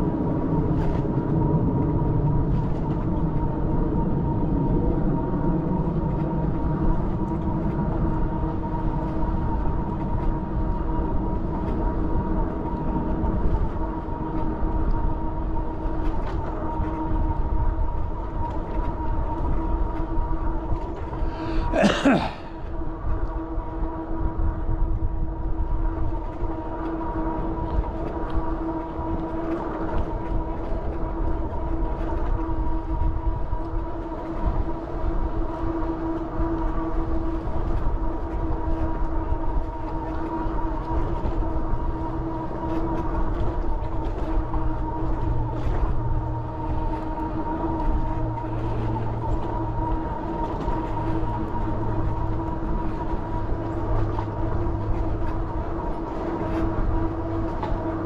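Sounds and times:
wind rumble on microphone: 0.0s - 58.0s
road noise: 40.8s - 58.0s.

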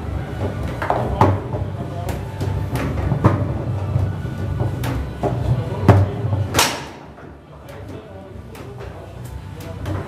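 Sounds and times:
foosball ball struck hard: 4.7s - 7.2s.

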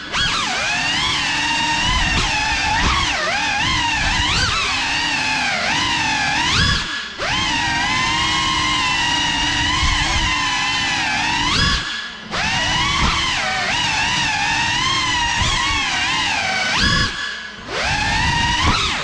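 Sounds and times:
drone motors whining: 0.0s - 19.0s.

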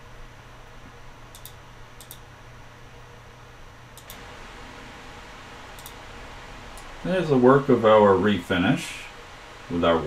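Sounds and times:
room noise hiss and hum: 0.0s - 10.0s.

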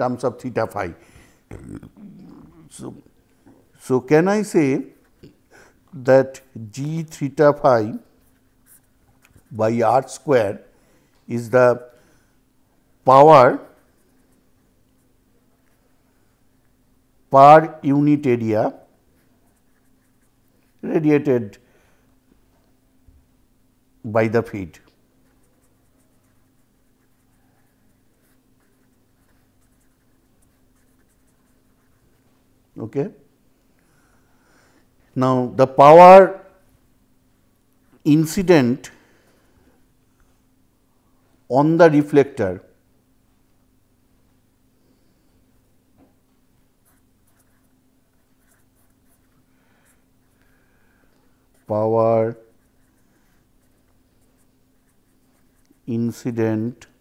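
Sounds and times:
felt-tip pen scratching on paper: 25.2s - 32.1s, 46.8s - 49.4s
pen scratching on paper: 46.8s - 49.3s.

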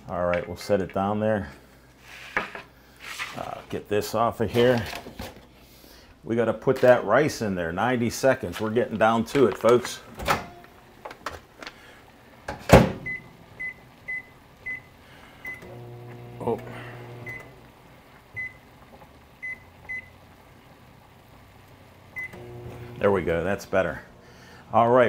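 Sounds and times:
microwave oven humming: 12.4s - 24.7s.

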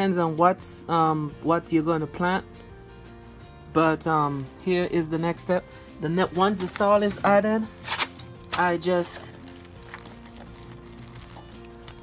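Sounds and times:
soft background music: 0.0s - 12.0s
water pouring onto soil: 9.1s - 12.0s.

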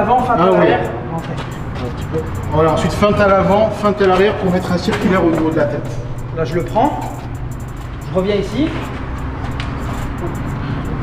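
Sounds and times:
low rumble of road traffic: 0.0s - 11.0s.

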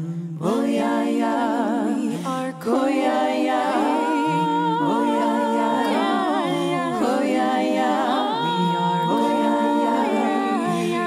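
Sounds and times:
voices singing in harmony: 0.0s - 11.0s.

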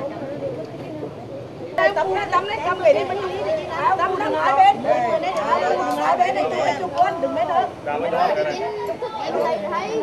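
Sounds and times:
group chatter: 0.0s - 10.0s.

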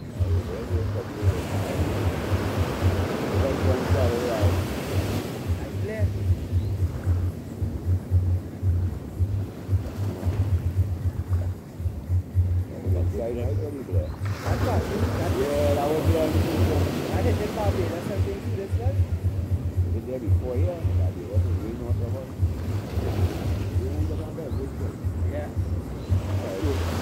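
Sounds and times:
small waves breaking on beach: 0.0s - 8.0s, 14.0s - 27.0s
wind rumble on microphone: 0.0s - 27.0s.

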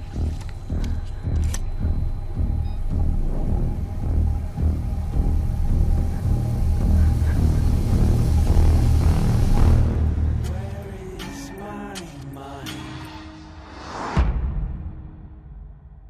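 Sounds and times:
deep pulsing low rumble: 0.0s - 10.5s.

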